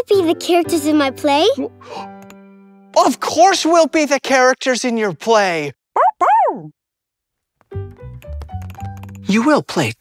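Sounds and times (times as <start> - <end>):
children's music with keyboard: 0.0 - 2.5
cartoon puppy barking: 6.0 - 6.7.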